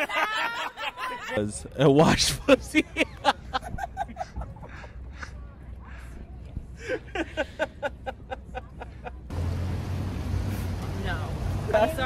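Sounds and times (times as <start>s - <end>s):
city street traffic: 1.3s - 12.0s.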